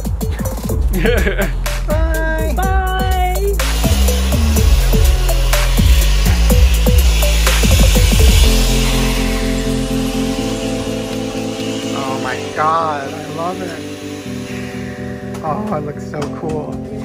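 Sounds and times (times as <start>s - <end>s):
electronic music with heavy beat: 0.0s - 15.4s
blender grinding powder: 3.7s - 14.6s.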